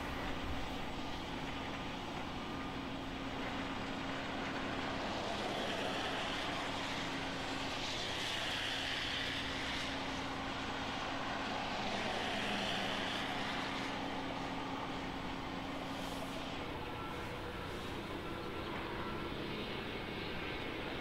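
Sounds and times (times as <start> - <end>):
steady engine hum: 0.0 - 21.0.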